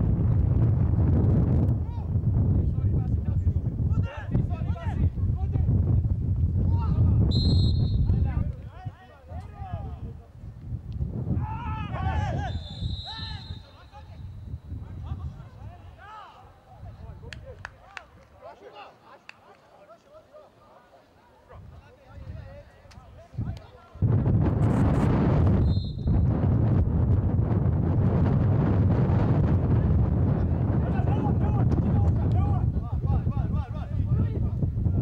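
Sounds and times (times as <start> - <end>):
wind rumble on microphone: 0.0 - 16.0, 21.5 - 35.0.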